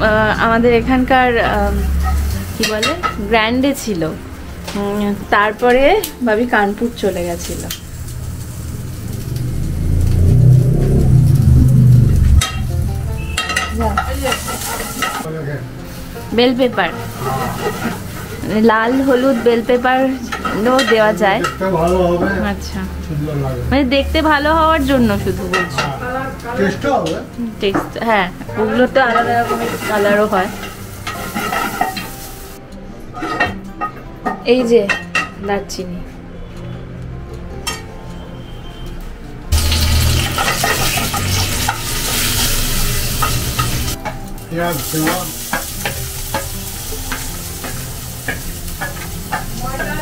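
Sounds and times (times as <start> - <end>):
vegetables sizzling in a frying pan: 0.0 - 32.6, 39.5 - 50.0
loud low rumble: 7.8 - 14.4
wooden spatula scraping a pan: 13.5 - 15.2, 17.0 - 21.0, 28.5 - 32.1.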